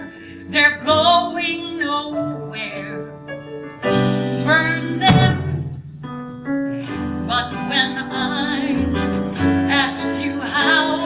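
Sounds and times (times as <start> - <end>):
piano chords: 0.0 - 11.0
live band playing show tune: 3.8 - 7.7
woman singing with vibrato: 4.4 - 5.8, 7.2 - 11.0.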